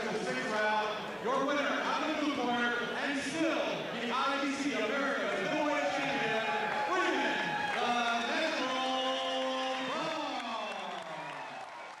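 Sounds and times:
announcer calling over loudspeakers: 3.9 - 11.2.

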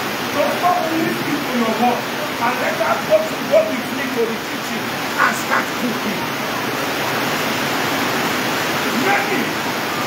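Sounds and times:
steady broadband hiss: 0.0 - 10.0.

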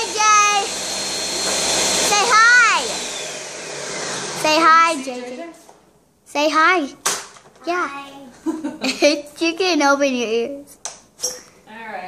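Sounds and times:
blender crushing ice: 0.0 - 4.7.

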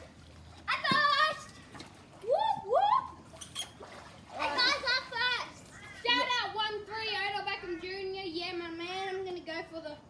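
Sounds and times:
water sloshing in a pool: 0.0 - 10.0.

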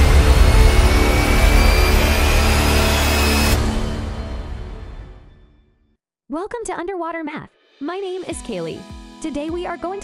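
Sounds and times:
theme music with heavy bass: 0.0 - 5.7.

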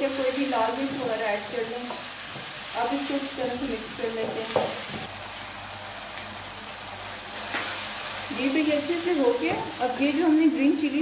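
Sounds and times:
rustle of stir-frying: 0.0 - 11.0
vegetables and meat sizzling in a wok: 0.0 - 11.0.

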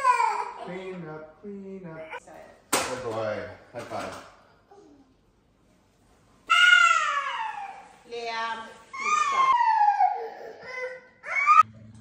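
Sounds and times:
child wailing: 6.5 - 7.9, 9.0 - 11.6.

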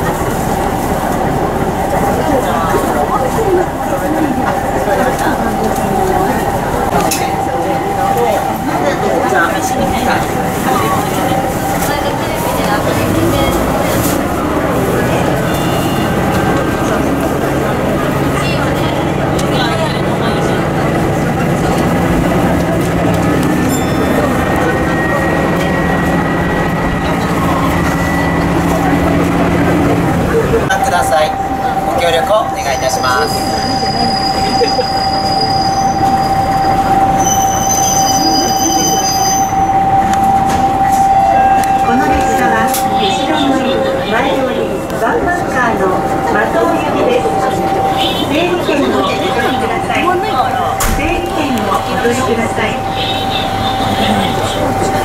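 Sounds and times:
diesel railcar engine: 0.0 - 55.0
rail noise: 0.0 - 55.0
high wheel squeal: 12.6 - 17.2, 22.0 - 55.0.

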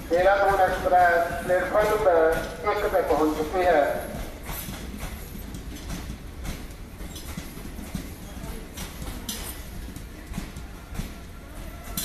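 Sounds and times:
train low rumble: 0.0 - 12.0
train wheels clacking over rail joints: 0.0 - 12.0.

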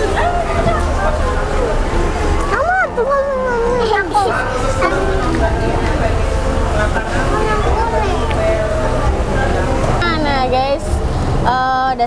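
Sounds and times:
steady low rumble: 0.0 - 12.0
young children talking: 0.0 - 12.0.

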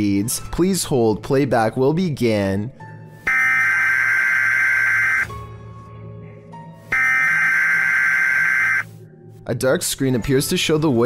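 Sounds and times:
buzzing warning tone: 3.3 - 5.3, 7.0 - 8.8.

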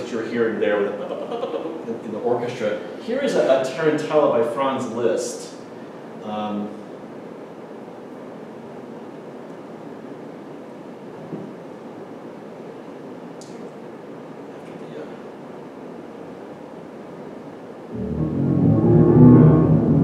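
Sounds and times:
faint hiss: 0.0 - 18.0.

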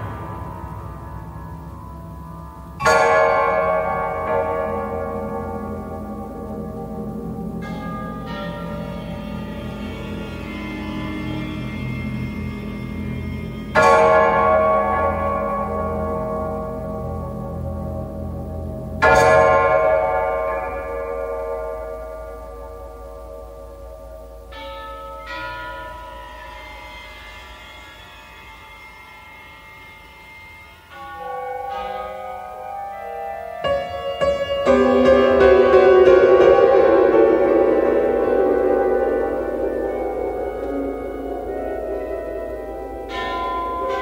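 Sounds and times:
bell-like piano chords: 0.0 - 30.0, 30.6 - 44.0
low drone: 0.0 - 44.0
sustained orchestral tones: 0.0 - 44.0
bright ringing strikes: 30.9 - 44.0.

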